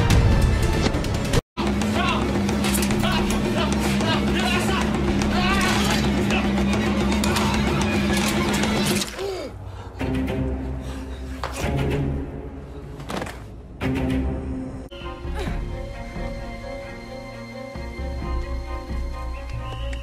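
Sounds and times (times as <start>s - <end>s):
action film music: 0.0s - 20.0s.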